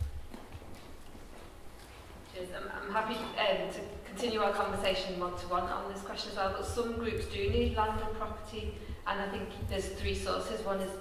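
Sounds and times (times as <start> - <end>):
microphone handling knocks: 6.5 - 10.3.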